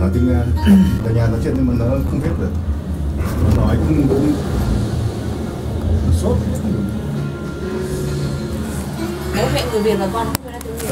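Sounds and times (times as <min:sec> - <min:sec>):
cable car cabin rumble: 0:00.0 - 0:10.9.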